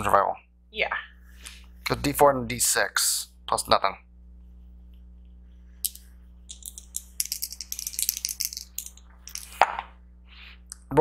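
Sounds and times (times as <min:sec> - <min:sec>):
faint steady hum: 0:00.0 - 0:11.0
dice clattering into tray: 0:05.9 - 0:09.6.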